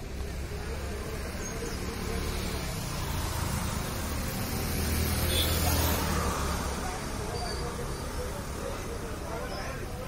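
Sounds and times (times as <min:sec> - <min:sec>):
street traffic: 0:00.0 - 0:10.0
voices: 0:00.0 - 0:10.0.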